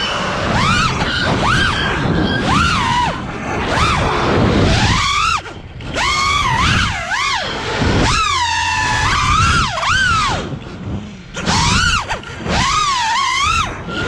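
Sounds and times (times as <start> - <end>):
drone motors whining: 0.0 - 14.0.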